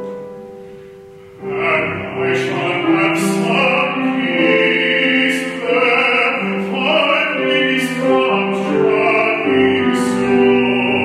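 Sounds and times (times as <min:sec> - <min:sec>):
grand piano: 0:00.0 - 0:11.0
baritone singing sustained notes: 0:01.2 - 0:11.0.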